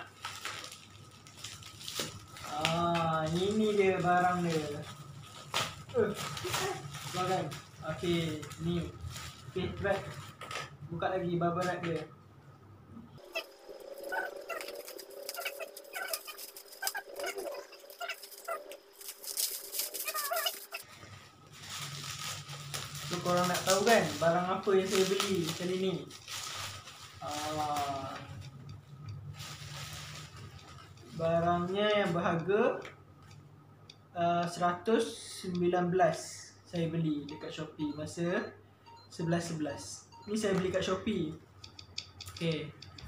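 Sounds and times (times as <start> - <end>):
bubble wrap crinkling: 0.0 - 10.8, 13.3 - 28.5, 29.2 - 32.2
plastic packaging rustling: 0.0 - 10.8, 13.3 - 28.5, 29.2 - 32.2
sharp plastic crackle: 0.0 - 10.8, 13.2 - 28.5, 29.2 - 32.2
squeaky chirps: 13.2 - 20.9.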